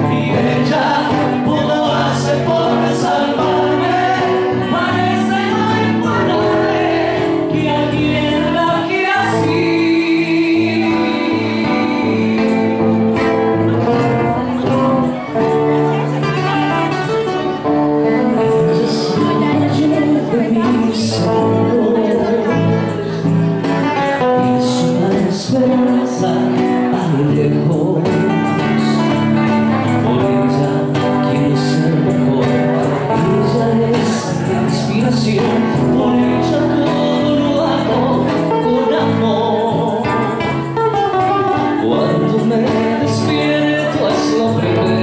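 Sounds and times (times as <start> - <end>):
karaoke backing track: 0.0 - 45.0
live band music: 0.0 - 45.0
man singing into a microphone: 0.0 - 45.0
strummed acoustic guitar: 0.0 - 45.0.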